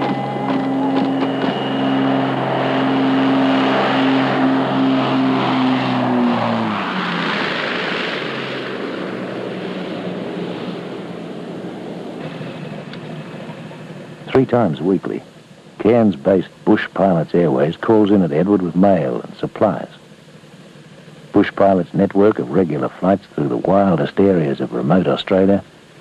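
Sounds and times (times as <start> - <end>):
aircraft landing roll rushing: 0.0 - 15.2
propeller engines droning: 0.0 - 26.0.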